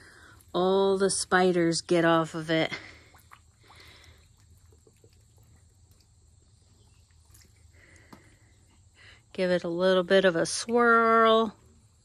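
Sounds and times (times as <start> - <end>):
faint water lapping: 0.0 - 11.3.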